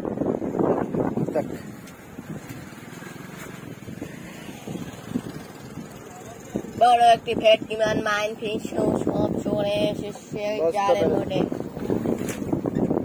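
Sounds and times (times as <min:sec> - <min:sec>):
faint outdoor background noise: 0:00.0 - 0:13.0
person speaking: 0:06.1 - 0:11.6.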